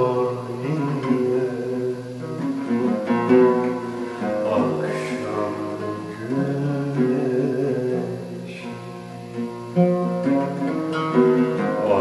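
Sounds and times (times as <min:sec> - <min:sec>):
oud plucked melody: 0:00.0 - 0:12.0.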